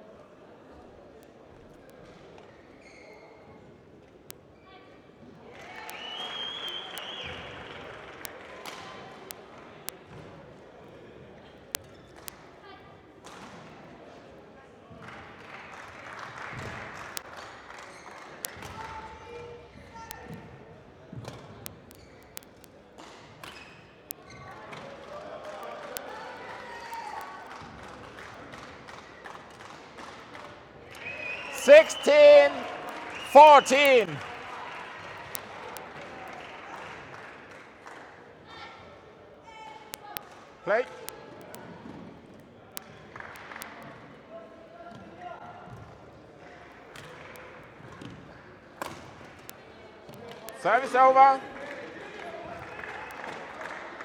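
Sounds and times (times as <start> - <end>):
murmur of voices: 30.5 - 36.8
person calling out loudly: 33.3 - 34.2.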